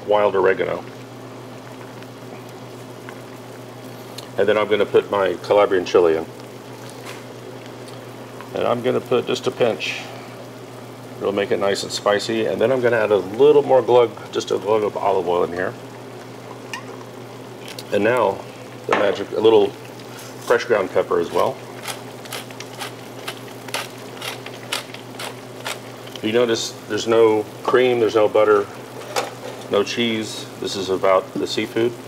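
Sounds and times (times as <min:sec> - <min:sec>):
low steady hum: 0:00.0 - 0:32.0
food simmering in a pan: 0:00.1 - 0:32.0.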